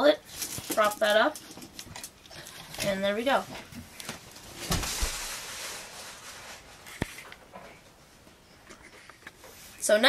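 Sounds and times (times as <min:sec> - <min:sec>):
rustling handling noise: 0:00.2 - 0:07.9.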